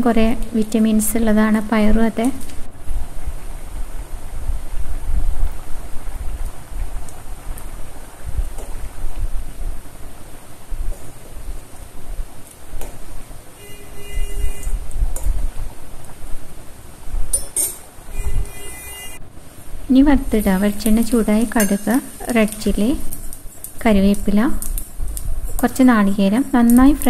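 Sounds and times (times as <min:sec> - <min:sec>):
curry bubbling in a pot: 0:02.3 - 0:18.8
steel spoon stirring: 0:17.4 - 0:18.8, 0:21.5 - 0:22.0.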